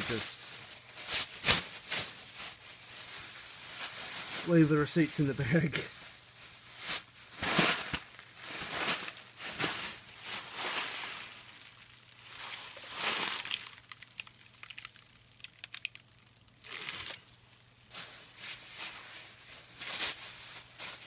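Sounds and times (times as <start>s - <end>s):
plastic bags crinkling: 0.0s - 21.0s.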